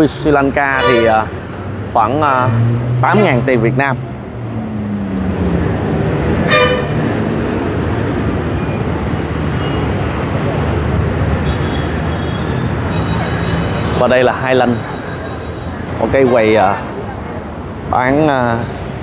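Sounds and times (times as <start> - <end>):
street traffic rumble: 0.0 - 19.0
vehicle horn toot: 0.8 - 1.2, 6.5 - 7.0, 11.4 - 14.0.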